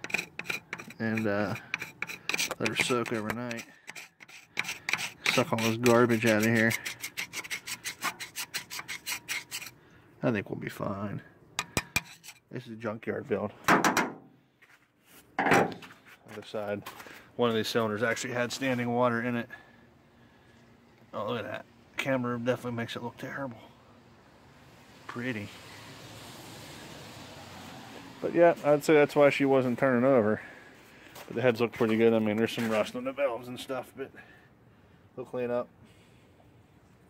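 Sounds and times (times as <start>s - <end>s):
hand tool scraping rust: 0.0s - 9.8s, 11.6s - 12.5s.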